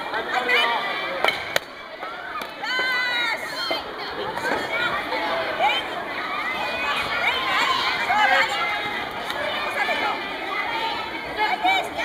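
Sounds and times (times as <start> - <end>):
children's voices: 0.0 - 12.0.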